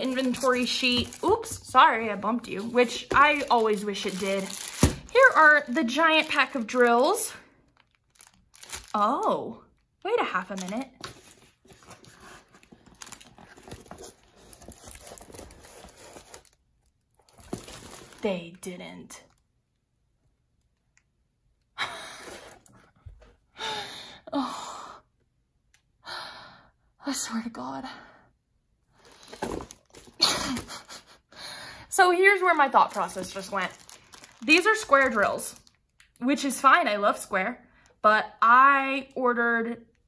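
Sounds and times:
plastic and paper crinkling: 0:00.0 - 0:09.3, 0:10.1 - 0:18.5, 0:29.0 - 0:31.0, 0:32.2 - 0:36.0.

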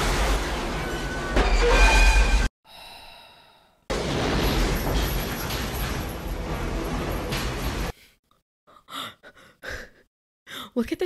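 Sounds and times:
crashing and grinding metal: 0:00.0 - 0:02.5, 0:03.9 - 0:07.9
heavy rumble: 0:03.9 - 0:07.9.

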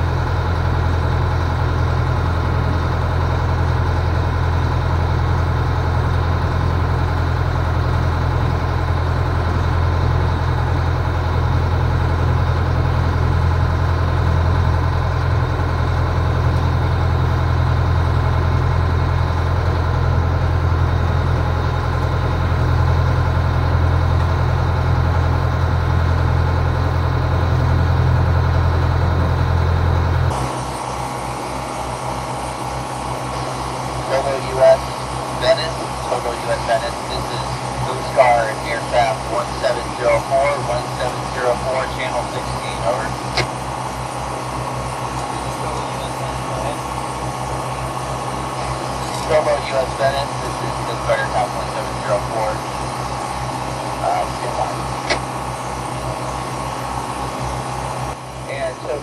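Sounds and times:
boat engine droning: 0:00.0 - 0:59.0.

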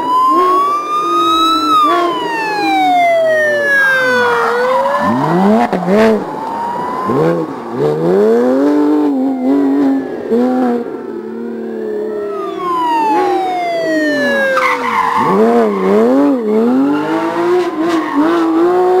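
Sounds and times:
rally car engine revving: 0:00.0 - 0:19.0.

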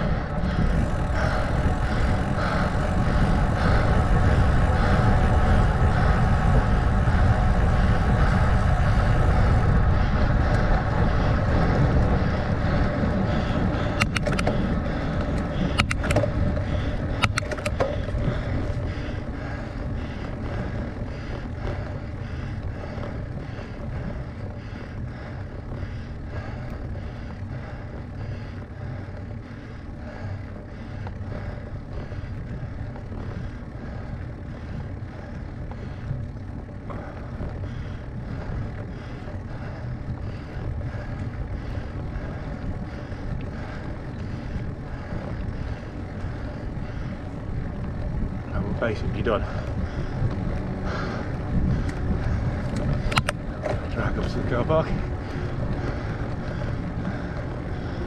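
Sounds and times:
bicycle rolling noise: 0:00.0 - 0:58.0
wind rushing over microphone: 0:00.0 - 0:58.0
sharp clicks: 0:13.9 - 0:14.6, 0:15.2 - 0:16.4, 0:17.2 - 0:18.0, 0:52.6 - 0:53.8.

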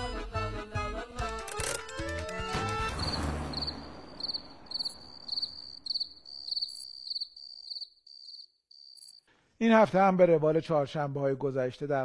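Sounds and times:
cricket chirping: 0:03.0 - 0:09.3.

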